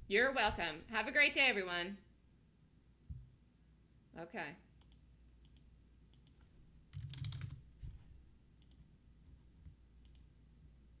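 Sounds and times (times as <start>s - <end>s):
computer keyboard clicks: 4.8s - 7.6s.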